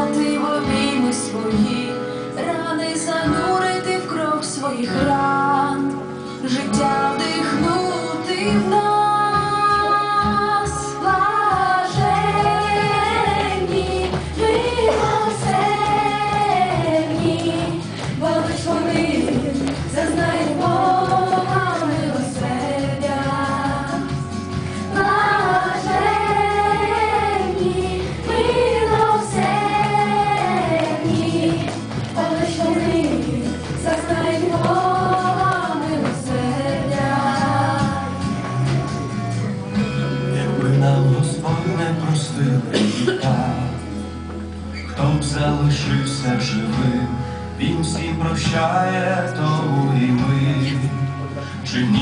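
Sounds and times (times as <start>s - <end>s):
instrumental accompaniment with bass: 0.0s - 52.0s
children singing: 8.4s - 38.8s.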